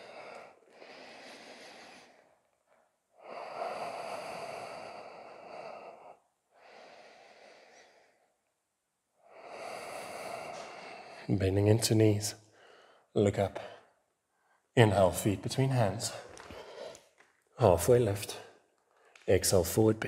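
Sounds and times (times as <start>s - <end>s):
man breathing slowly and deeply: 0.0s - 8.5s, 9.2s - 11.3s, 12.4s - 14.7s, 16.1s - 17.2s.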